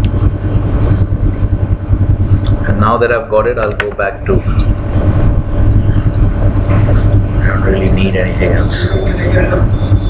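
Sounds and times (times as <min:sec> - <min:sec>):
loud steady low rumble: 0:00.0 - 0:10.0.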